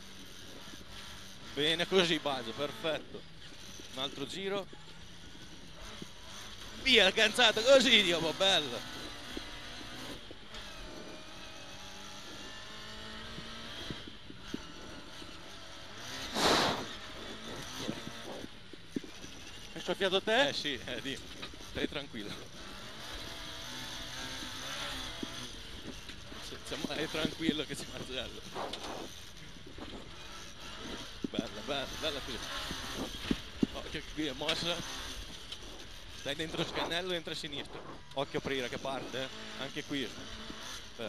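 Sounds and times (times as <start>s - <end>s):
tyre and road noise: 0.0s - 41.0s
car engine revving: 0.1s - 41.0s
loud rushing burst: 16.3s - 16.9s.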